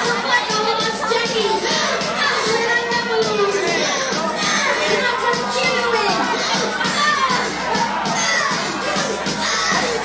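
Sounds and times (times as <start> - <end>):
loud club music: 0.0 - 10.0
party crowd shouting and singing: 0.0 - 10.0.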